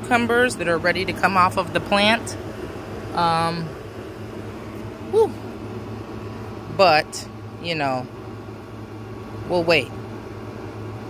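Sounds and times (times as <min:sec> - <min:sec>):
steady low hum: 0:00.0 - 0:11.0
woman's woo: 0:05.1 - 0:05.4.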